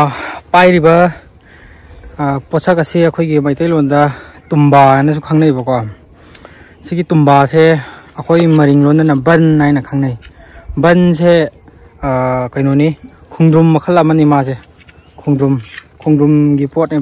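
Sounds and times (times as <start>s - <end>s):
man talking: 0.0s - 1.4s, 2.1s - 6.0s, 6.8s - 17.0s
high-pitched insect trill: 0.0s - 17.0s.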